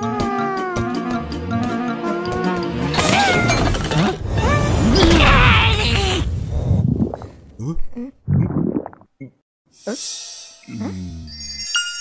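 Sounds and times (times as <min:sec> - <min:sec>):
cartoon character voice: 0:04.4 - 0:06.2.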